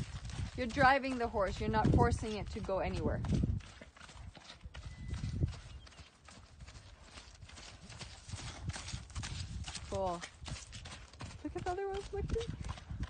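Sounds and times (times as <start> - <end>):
horse hoofbeats on grass: 0.0 - 13.0.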